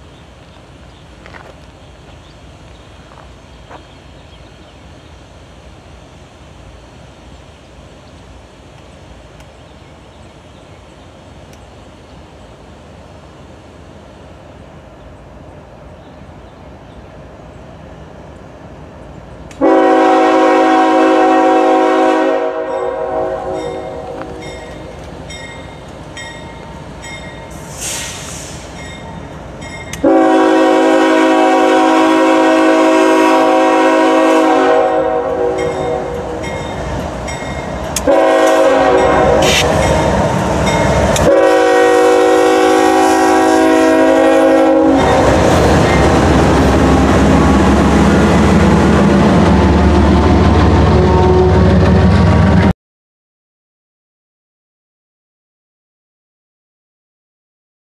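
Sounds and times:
train engine rumbling: 0.0 - 52.7
locomotive air horn blasts: 19.6 - 24.5, 30.0 - 36.5, 38.0 - 40.1, 41.2 - 46.2, 50.9 - 52.0.

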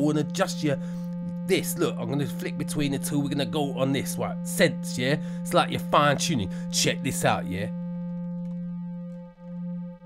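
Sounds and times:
wobbling synth tone: 0.0 - 10.0.

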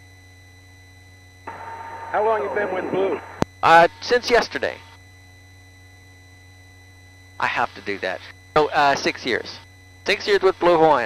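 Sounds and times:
faint steady tones: 0.0 - 11.0
low electrical hum: 0.0 - 11.0
helicopter cabin noise: 1.5 - 4.7.

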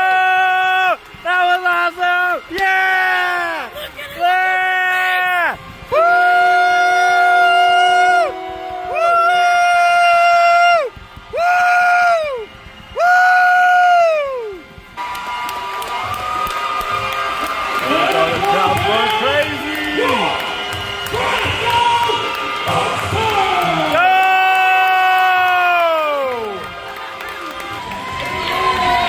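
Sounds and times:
crowd cheering and shouting: 0.0 - 29.0
horn blasts: 5.5 - 13.9.

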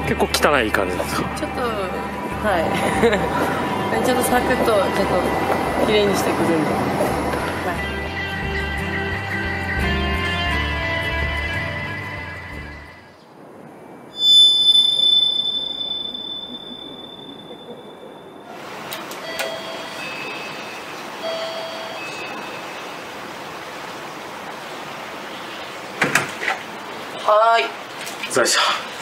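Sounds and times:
intercom doorbell two-note chime: 14.2 - 18.4, 19.2 - 22.8
bright chime ringing: 14.2 - 18.5, 19.2 - 23.0.

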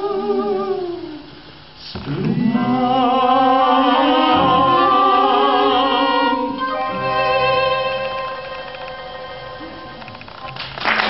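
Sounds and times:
person singing: 0.0 - 1.3, 1.9 - 10.0
violin and instruments holding chord: 2.4 - 10.2.

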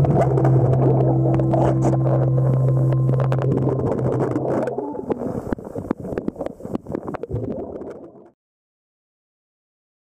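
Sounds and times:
underwater engine hum: 0.0 - 8.0.

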